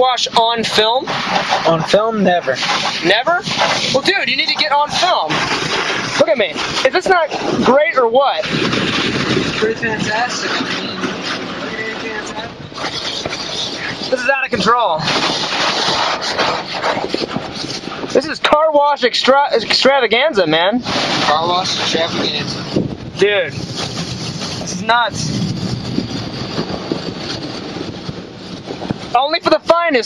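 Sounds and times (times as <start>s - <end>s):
water jets hitting car: 0.0s - 19.9s.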